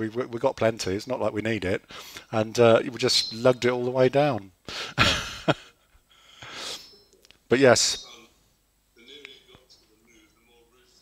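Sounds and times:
man laughing breathily: 4.7s - 6.6s.

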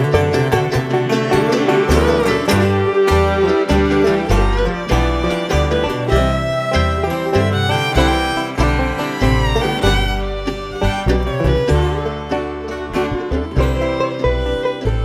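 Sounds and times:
acoustic guitar: 0.0s - 15.0s
banjo: 0.0s - 15.0s
fiddle: 0.0s - 15.0s
mandolin: 0.0s - 15.0s
upright bass notes: 0.0s - 15.0s.

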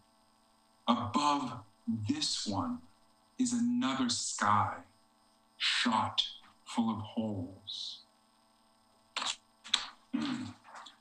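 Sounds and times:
man clearing throat: 10.2s - 10.6s.

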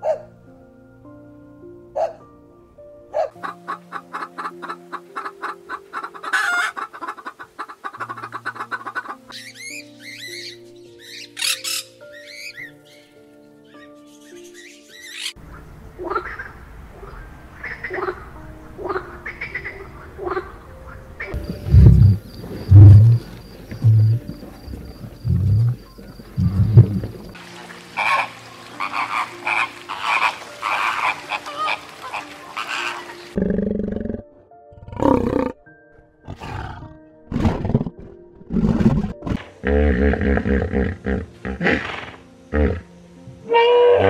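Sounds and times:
harsh animal calls: 21.2s - 27.4s, 28.0s - 35.6s
deep loud animal calls: 21.3s - 27.4s
bird flock chatter: 28.0s - 33.4s.

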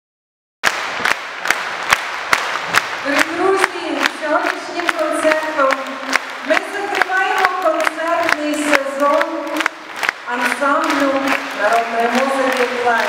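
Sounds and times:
sharp claps in steady beat: 0.6s - 13.0s.

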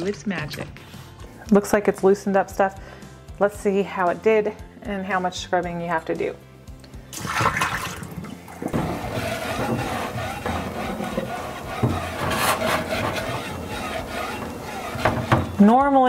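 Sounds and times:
liquid pouring into sink: 7.2s - 8.9s
sponge scrubbing wet glass: 8.7s - 15.8s.

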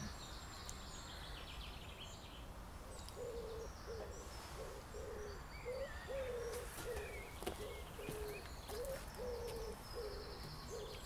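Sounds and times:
small songbirds chirping: 0.0s - 11.0s
wood pigeon cooing: 3.2s - 11.0s.

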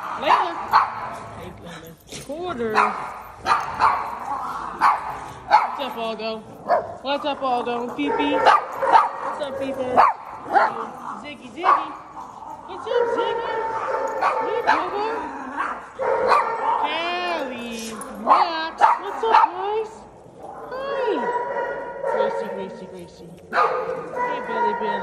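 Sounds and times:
dogs barking and yipping: 0.0s - 25.0s.

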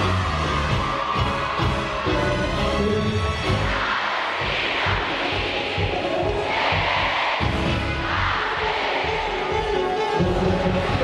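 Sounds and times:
outdoor crowd cheering: 0.0s - 11.0s.

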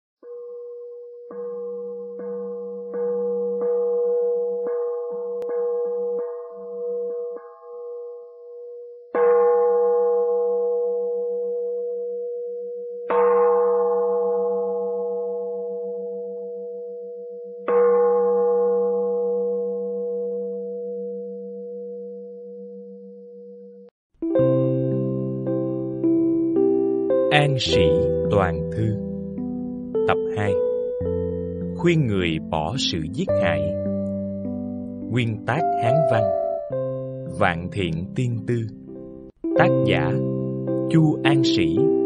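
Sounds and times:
plucked notes: 30.0s - 34.2s, 34.9s - 42.0s.

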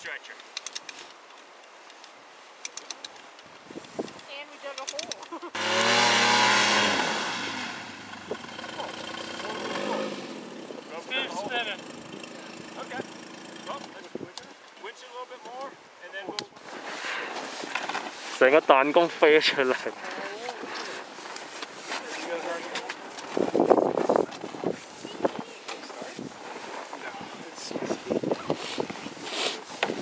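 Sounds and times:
snowmobile engine starting and revving: 5.5s - 14.1s.

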